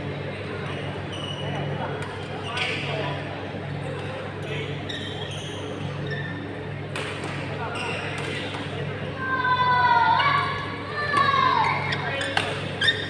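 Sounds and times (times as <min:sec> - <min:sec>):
rackets smacking shuttlecock: 0:12.2 - 0:12.7.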